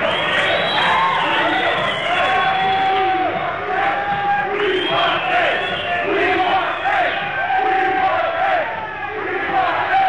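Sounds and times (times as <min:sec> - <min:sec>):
audience cheering and chanting: 0:00.0 - 0:10.0.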